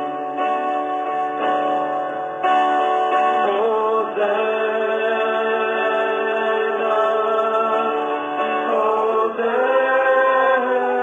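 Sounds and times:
acoustic guitar: 0.0s - 11.0s
man singing long held notes: 3.3s - 11.0s.

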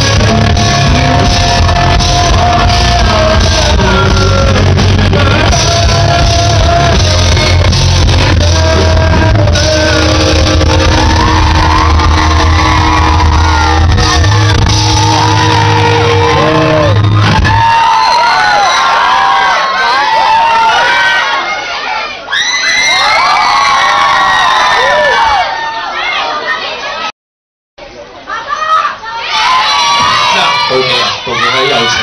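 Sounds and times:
rock band holding a chord: 0.0s - 17.6s
crowd cheering and whooping: 0.0s - 26.8s, 29.2s - 32.0s.

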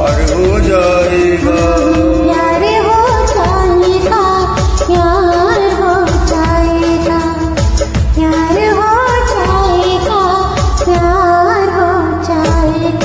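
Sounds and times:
backing track with drums: 0.0s - 11.4s, 12.3s - 13.0s
karaoke duet singing: 0.0s - 13.0s.

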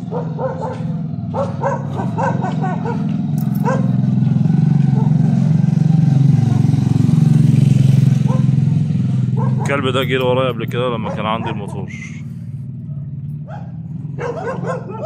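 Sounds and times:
dog barking: 0.0s - 4.0s, 4.9s - 5.4s, 6.4s - 6.8s, 8.2s - 8.6s, 9.3s - 9.8s, 11.0s - 12.1s, 12.8s - 15.0s
motorbike engine running: 0.0s - 15.0s.

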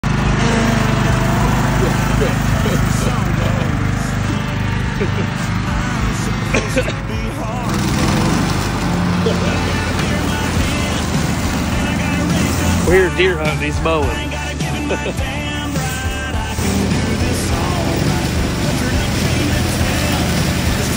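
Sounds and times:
mower blades chewing dry leaves: 0.0s - 20.9s
riding lawn mower running: 0.0s - 20.9s
person laughing: 0.4s - 7.6s, 9.1s - 10.3s, 14.3s - 18.2s.

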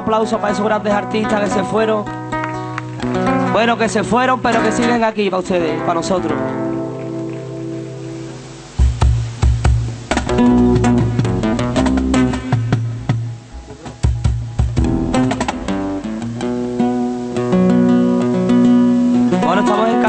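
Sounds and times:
flamenco guitars playing: 0.0s - 20.0s.

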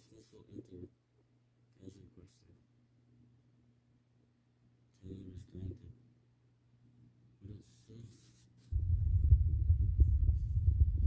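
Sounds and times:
loud low irregular rumble: 8.8s - 11.0s.

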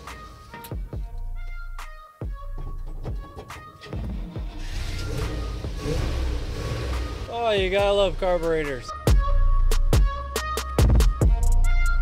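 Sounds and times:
pickup engine starting: 3.6s - 8.8s
engine low rumble: 4.1s - 9.0s.

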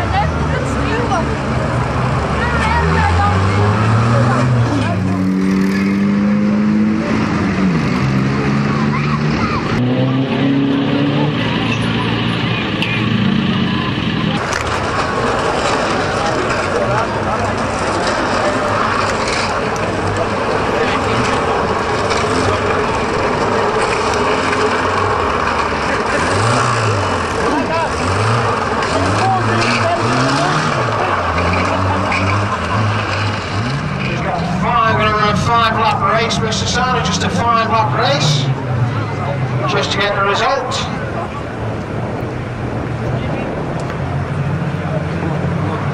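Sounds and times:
car engines revving: 0.0s - 45.9s.

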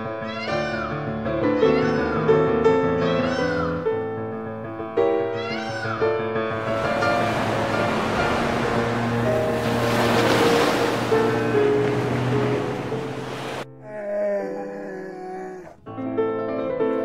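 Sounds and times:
background music: 0.0s - 17.0s
peacock calling: 5.4s - 8.7s
waves washing over sandy shore: 6.6s - 13.6s.

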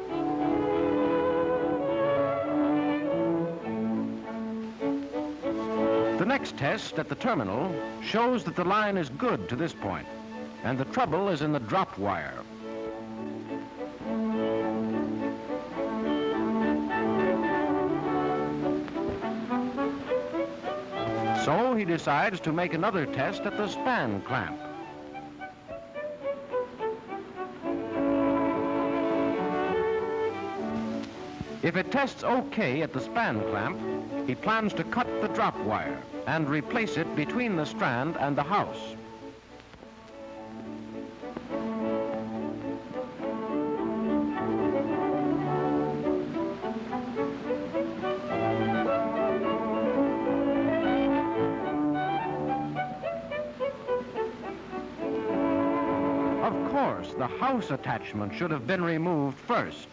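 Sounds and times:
orchestral violins playing: 0.0s - 59.9s.

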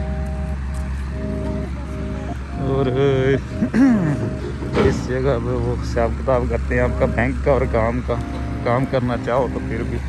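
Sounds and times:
background music of held notes: 0.0s - 10.0s
steady low rumble: 0.0s - 10.0s.

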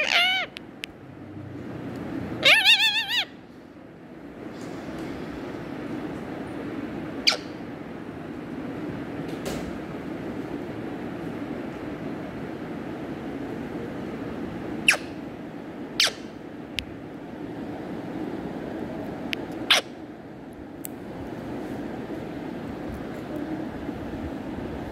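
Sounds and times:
parrot squeaking: 0.0s - 0.6s, 2.4s - 3.4s, 7.2s - 7.6s, 14.9s - 15.2s, 16.0s - 16.3s, 19.7s - 19.9s
steady low hum: 0.0s - 24.9s.

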